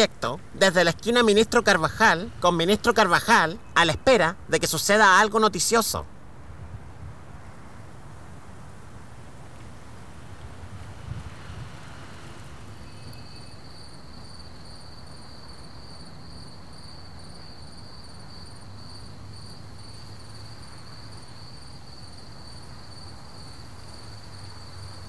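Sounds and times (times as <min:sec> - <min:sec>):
cricket trilling: 0:00.0 - 0:25.0.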